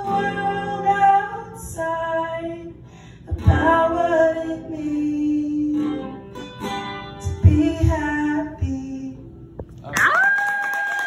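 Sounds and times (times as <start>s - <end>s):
strummed acoustic guitar: 0.0s - 2.6s, 3.2s - 9.6s
woman singing: 0.0s - 6.2s, 7.2s - 9.4s
audience clapping: 9.9s - 11.0s
high-pitched cheer: 9.9s - 11.0s.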